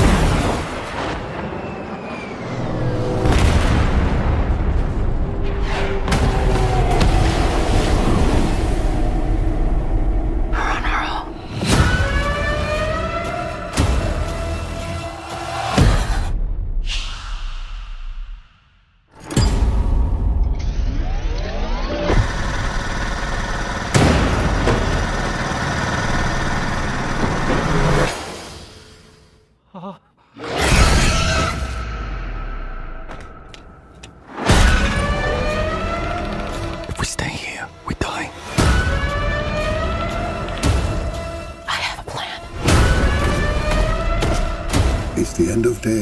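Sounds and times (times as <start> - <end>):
continuous explosion rumble: 0.0 - 10.3.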